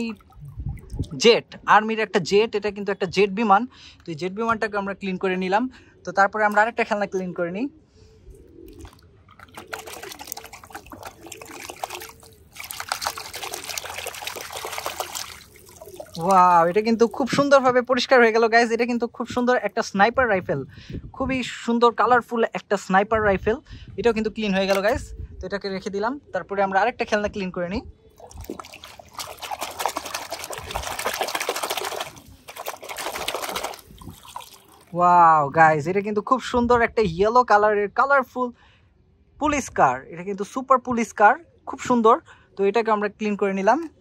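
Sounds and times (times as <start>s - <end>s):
water splashing in bucket: 8.7s - 18.3s, 28.2s - 35.0s.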